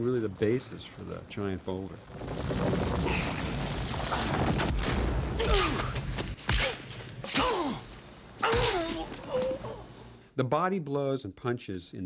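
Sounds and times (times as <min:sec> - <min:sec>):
heavy low rolling rumble: 0:00.0 - 0:05.4.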